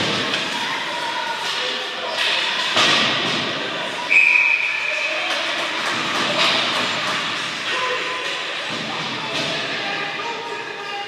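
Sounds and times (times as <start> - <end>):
hockey sticks and puck clacking: 0.0 - 11.0.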